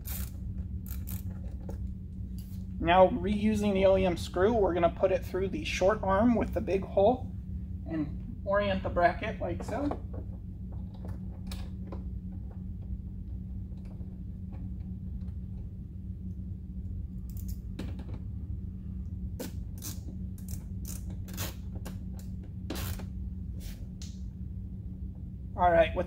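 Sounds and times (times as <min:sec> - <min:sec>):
hand ratchet clicking: 0:00.0 - 0:01.3
steady low hum: 0:00.0 - 0:26.0.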